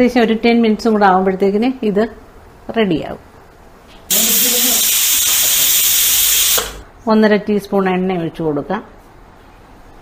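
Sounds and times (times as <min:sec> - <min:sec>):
pressure cooker steam hiss: 0:04.1 - 0:06.8.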